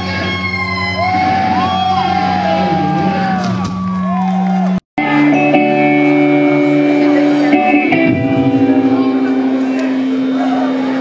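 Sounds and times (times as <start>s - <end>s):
loud electric guitar: 0.0s - 4.0s, 5.0s - 11.0s.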